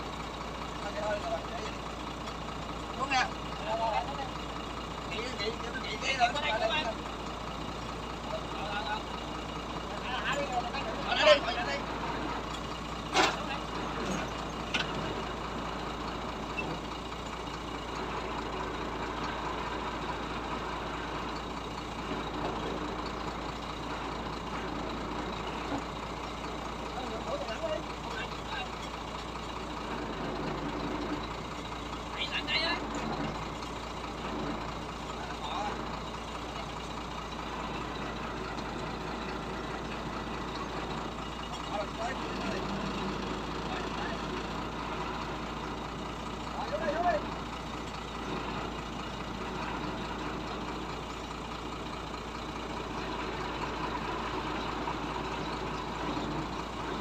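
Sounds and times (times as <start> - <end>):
truck engine running: 0.0 - 57.0.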